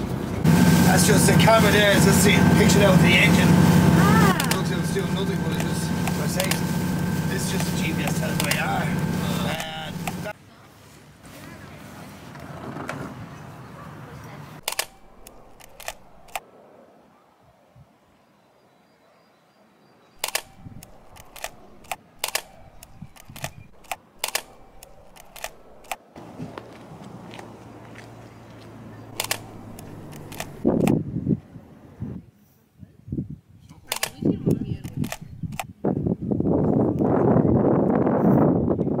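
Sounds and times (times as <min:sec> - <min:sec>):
rushing noise: 0:00.0 - 0:10.3
boat engine running: 0:00.4 - 0:10.3, 0:29.1 - 0:30.9
camera shutter clicks: 0:04.4 - 0:04.7, 0:07.5 - 0:10.3, 0:14.6 - 0:16.4, 0:20.2 - 0:26.0, 0:29.2 - 0:31.0, 0:33.9 - 0:35.7.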